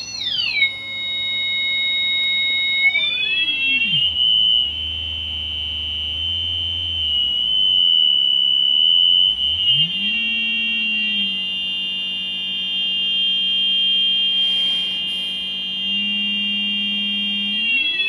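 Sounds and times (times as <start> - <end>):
high buzzy synthesizer tone: 14.2 - 18.0
low sliding tone: 14.4 - 16.4.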